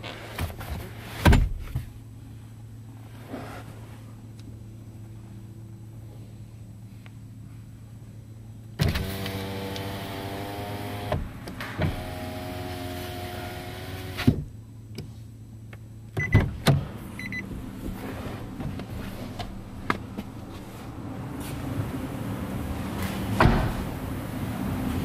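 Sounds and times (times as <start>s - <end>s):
power window motor humming: 8.8s - 14.4s.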